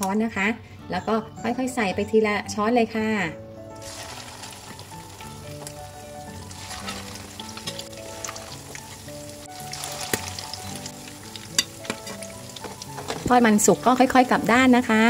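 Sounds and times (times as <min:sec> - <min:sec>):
batter sizzling in hot oil: 0:03.8 - 0:14.8.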